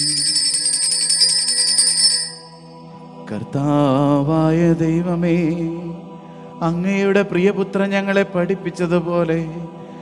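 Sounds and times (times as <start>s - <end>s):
small altar bells ringing: 0.0s - 3.2s.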